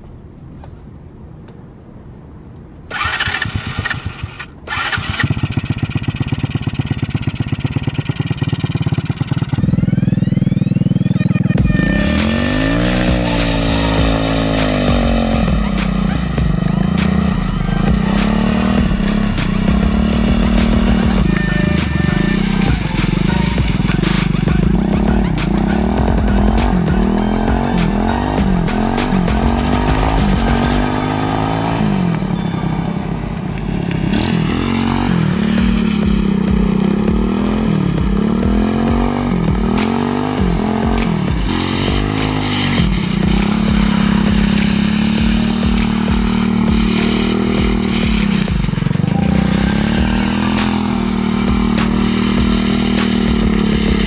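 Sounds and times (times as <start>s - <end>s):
engine starter cranking: 2.9s - 10.8s
motorbike engine idling and revving: 2.9s - 54.0s
music with steady beat: 9.0s - 32.1s, 33.9s - 54.0s.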